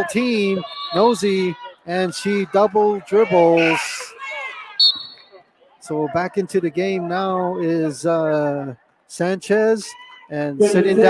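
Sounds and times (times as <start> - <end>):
referee whistle: 0.5 - 1.3, 4.8 - 5.4
sneakers squeaking on floor: 4.8 - 5.2.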